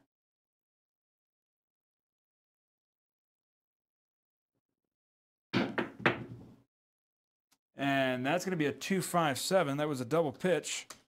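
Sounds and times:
dice knocking on table: 0:05.6 - 0:06.5.

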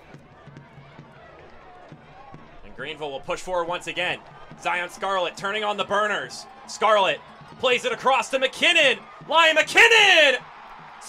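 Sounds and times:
low stadium background noise: 0:00.0 - 0:11.0.

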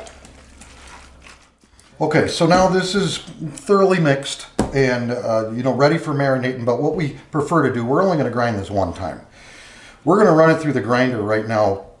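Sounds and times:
hands kneading meat in a metal pan: 0:00.0 - 0:05.0.

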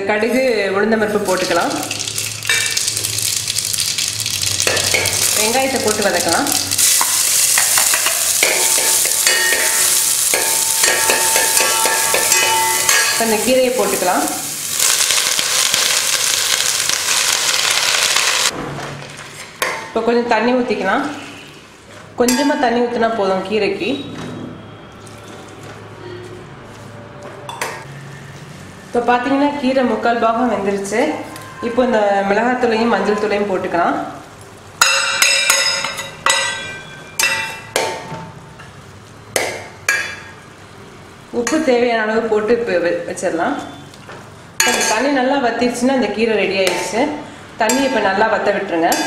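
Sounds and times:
hot oil sizzling in a pot: 0:01.2 - 0:18.6.

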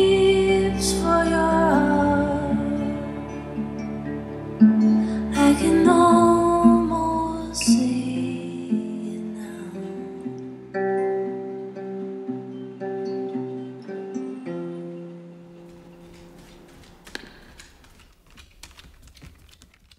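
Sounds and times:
acoustic guitar chords: 0:00.0 - 0:17.3
faint clicks: 0:15.7 - 0:19.9.

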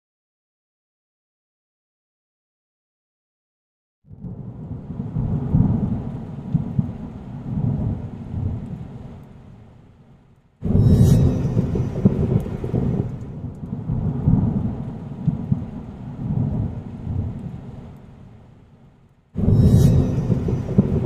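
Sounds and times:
rolling thunder rumble: 0:04.1 - 0:09.8, 0:10.6 - 0:18.5, 0:19.4 - 0:21.0
loud thunder crack: 0:10.6 - 0:17.4, 0:19.4 - 0:21.0.

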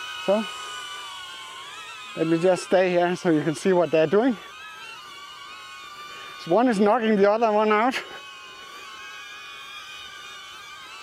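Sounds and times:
drone propeller whine: 0:00.0 - 0:11.0.

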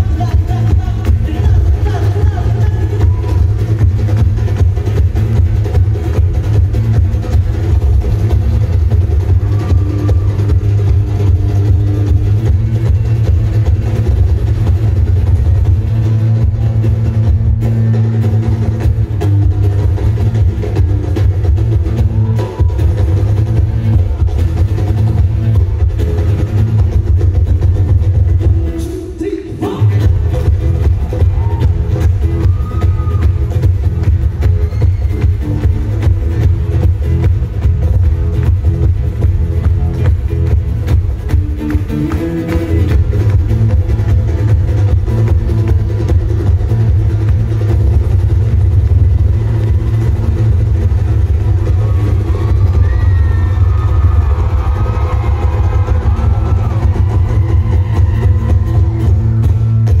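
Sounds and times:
hand drumming on djembe: 0:00.0 - 0:28.8, 0:29.8 - 1:00.0
loud amplified live band: 0:00.0 - 1:00.0.

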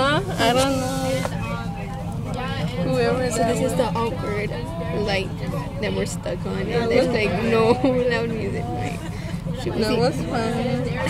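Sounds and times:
bus engine humming: 0:00.0 - 0:11.0
indistinct voices: 0:00.0 - 0:11.0.

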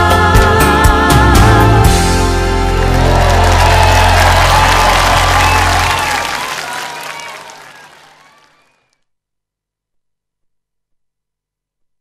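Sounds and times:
audience applauding and cheering: 0:02.5 - 0:08.8.

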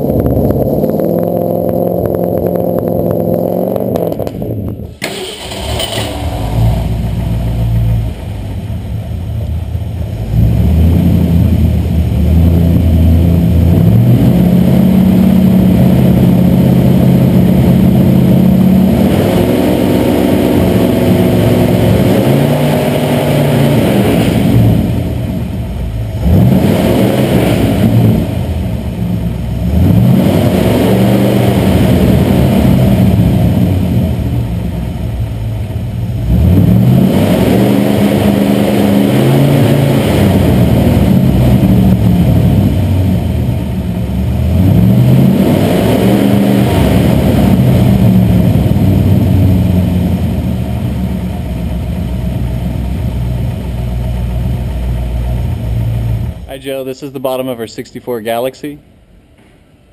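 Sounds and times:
car engine revving and idling: 0:00.0 - 0:59.9.

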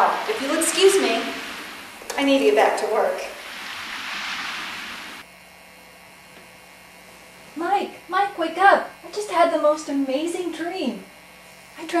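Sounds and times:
steady rushing noise: 0:00.0 - 0:05.2
faint low hum: 0:00.0 - 0:12.0.

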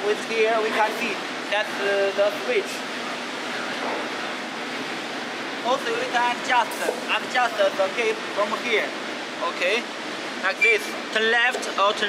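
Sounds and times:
factory hall background hiss: 0:00.0 - 0:12.0.

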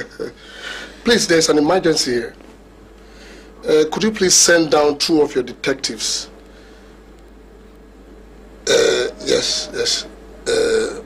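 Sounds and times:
low hum and hiss: 0:00.0 - 0:11.0
man saying uh: 0:08.7 - 0:10.1.

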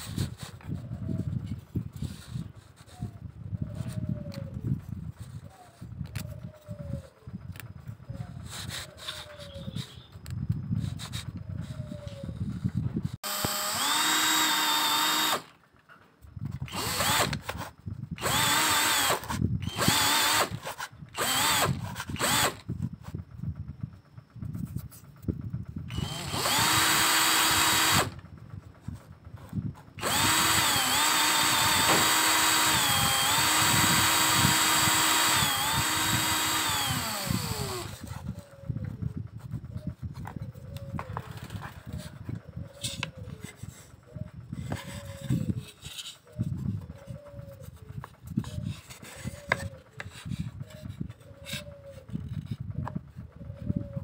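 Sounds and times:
drill press motor whine: 0:13.2 - 0:15.6, 0:16.7 - 0:17.6, 0:18.2 - 0:20.6, 0:21.2 - 0:22.7, 0:25.9 - 0:28.2, 0:30.0 - 0:38.1.

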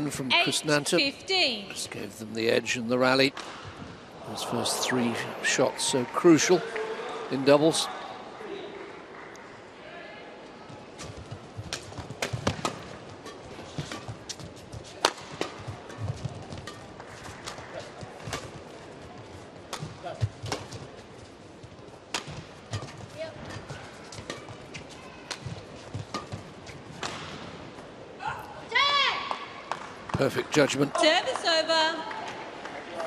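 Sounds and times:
crowd murmur: 0:04.1 - 0:08.4.

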